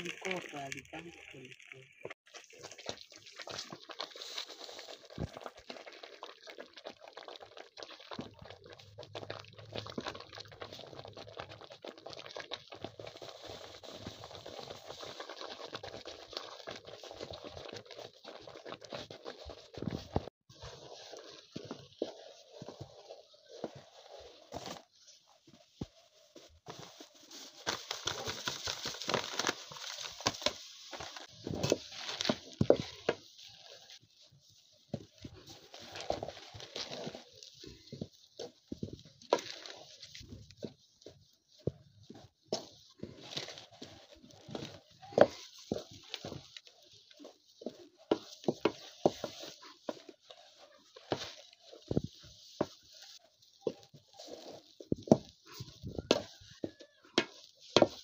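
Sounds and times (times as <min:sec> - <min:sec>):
wooden stick stirring porridge in pot: 0:00.0 - 0:58.0.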